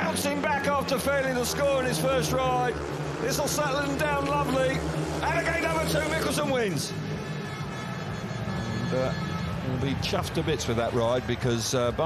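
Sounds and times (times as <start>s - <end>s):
motorcycle engines running: 0.0s - 12.0s.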